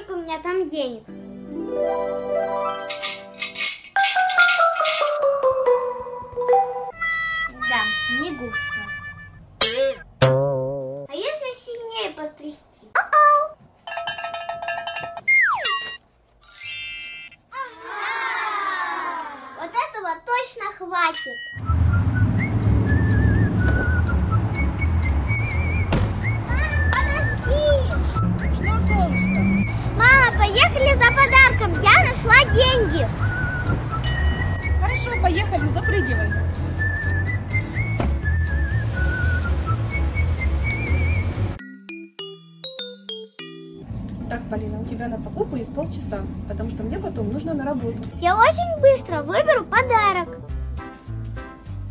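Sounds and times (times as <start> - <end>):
jingling coin rattle: 2.9 - 5.2
whistled melody over bass beat: 6.9 - 9.4, 15.3 - 15.7, 21.6 - 42.6
falling whistle glide: 21.6 - 26.9
bright held chime: 34.0 - 34.8
chiming keyboard tune: 34.0 - 35.5, 41.6 - 43.9.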